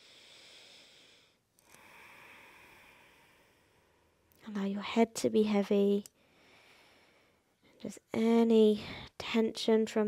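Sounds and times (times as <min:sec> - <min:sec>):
faint slow breathing: 0:00.0 - 0:04.3, 0:06.2 - 0:07.8.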